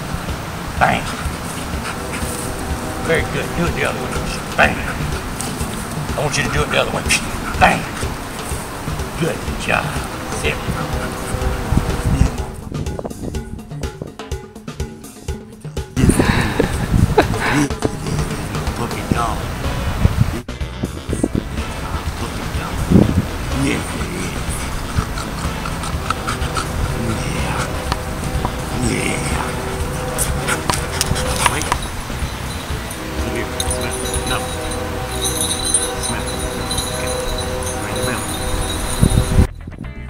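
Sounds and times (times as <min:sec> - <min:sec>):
wind buffeting microphone: 0:00.0 - 0:14.2, 0:16.0 - 0:40.0
dog panting: 0:00.8 - 0:12.5, 0:23.2 - 0:39.5.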